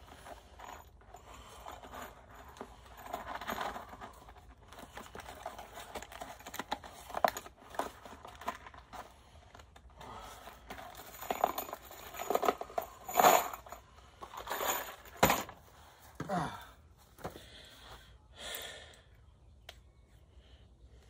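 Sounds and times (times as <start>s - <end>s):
rustling of handled objects: 0.0s - 18.0s.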